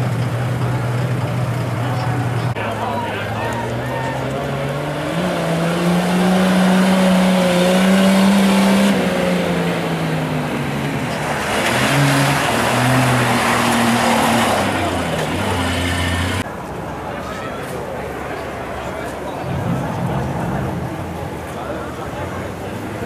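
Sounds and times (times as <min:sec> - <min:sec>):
car engine revving hard: 0:04.3 - 0:16.4.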